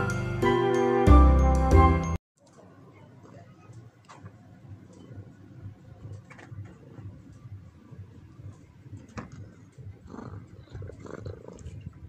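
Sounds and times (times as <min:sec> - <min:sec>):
cat purring: 0:08.0 - 0:12.0.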